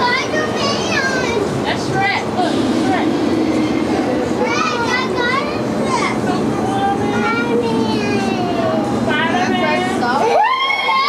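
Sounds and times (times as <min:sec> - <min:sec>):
children chattering and calling out: 0:00.0 - 0:11.0
street traffic: 0:00.0 - 0:11.0.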